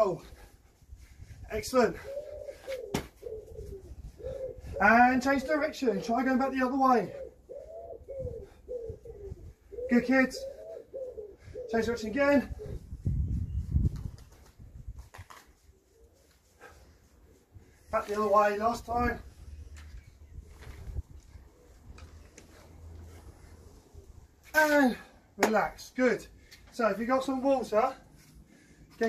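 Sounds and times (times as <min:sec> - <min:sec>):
pigeon cooing: 0:02.0 - 0:06.3, 0:07.0 - 0:11.9.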